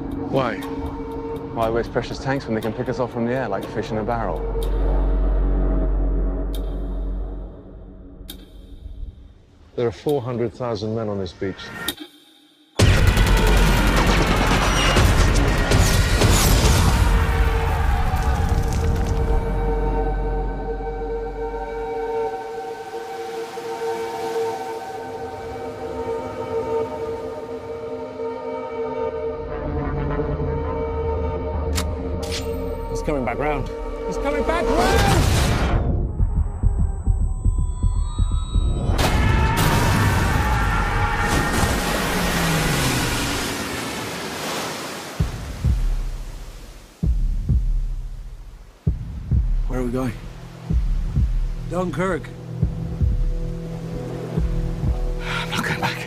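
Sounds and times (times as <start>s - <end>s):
deep rumble: 35.2s - 40.3s
deep heartbeat-like thumps: 35.3s - 39.1s, 45.2s - 55.3s.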